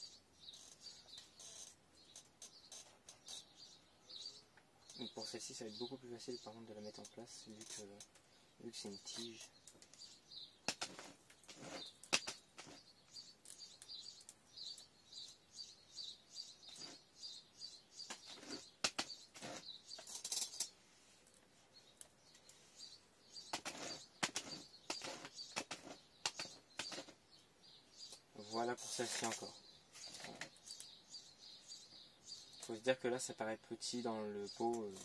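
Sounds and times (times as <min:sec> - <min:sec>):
small bird chirping: 0:00.0 - 0:35.0
potting soil crunching: 0:08.8 - 0:10.1, 0:10.7 - 0:14.4, 0:16.7 - 0:17.1, 0:18.0 - 0:22.0, 0:23.5 - 0:27.2, 0:28.1 - 0:30.8.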